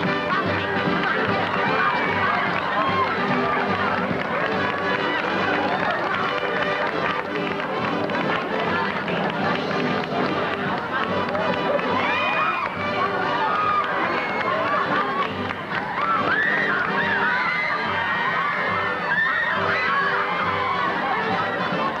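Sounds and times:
audience laughing: 0.0s - 9.7s, 13.0s - 16.0s
voices calling out: 0.0s - 22.0s.

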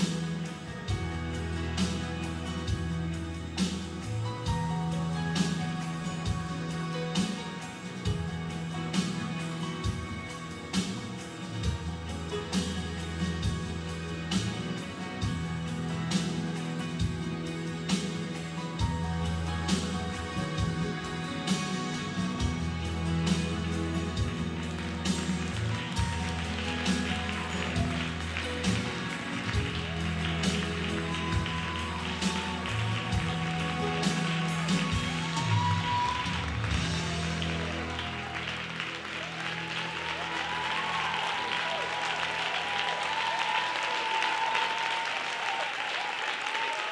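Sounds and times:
audience applauding: 0.0s - 2.5s, 17.9s - 46.9s.

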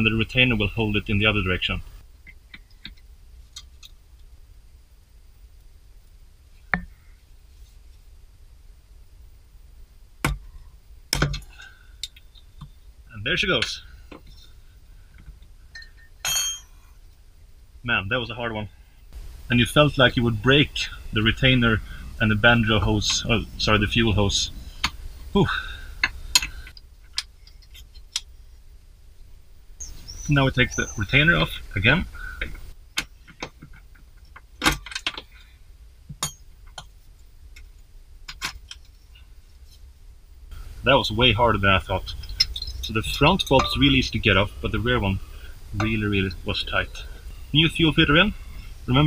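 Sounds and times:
metal tools clinking: 15.7s - 16.9s, 41.8s - 44.5s.

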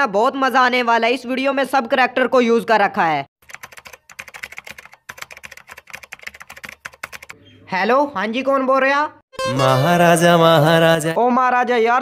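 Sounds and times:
keyboard typing clicks: 3.4s - 7.4s.

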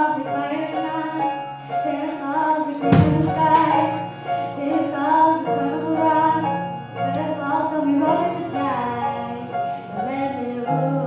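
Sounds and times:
girl singing pop ballad: 0.0s - 11.0s
piano and keyboard: 0.0s - 11.0s
drums with cymbal crash: 3.0s - 3.9s.

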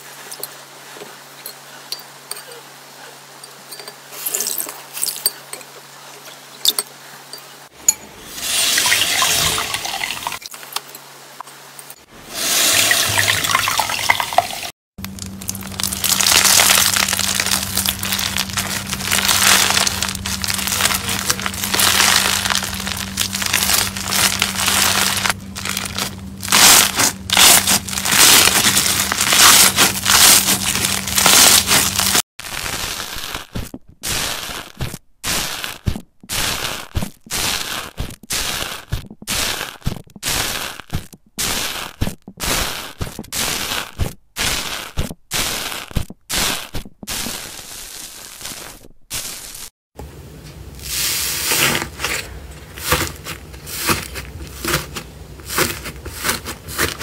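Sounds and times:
steady low hum: 15.0s - 32.2s
crunchy slime crackling: 15.0s - 49.7s, 50.8s - 57.0s.

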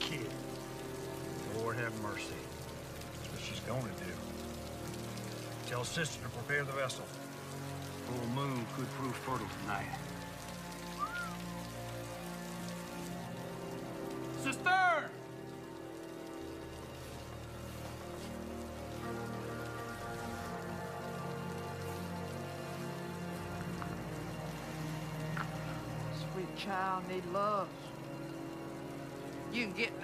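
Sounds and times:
rain on a roof: 0.0s - 30.0s.

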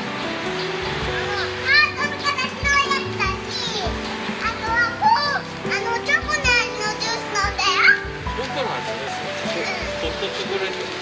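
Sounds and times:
young child calling and talking: 0.5s - 8.4s, 9.5s - 10.0s.

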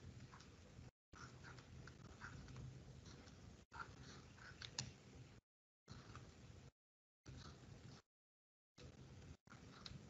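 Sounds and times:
stylus scratching on tablet screen: 0.0s - 5.2s, 5.9s - 8.2s, 8.8s - 10.0s
low steady hum: 0.0s - 8.0s, 8.8s - 10.0s.

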